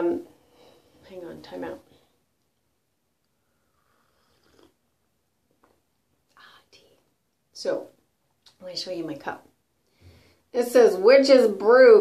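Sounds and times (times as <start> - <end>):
sip and exhale: 3.3 - 4.8.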